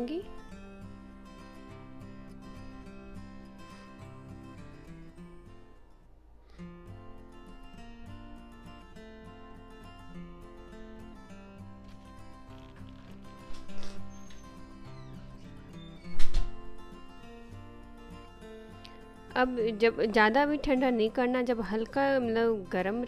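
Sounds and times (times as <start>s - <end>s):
instrumental music with held notes: 8.9s - 19.8s.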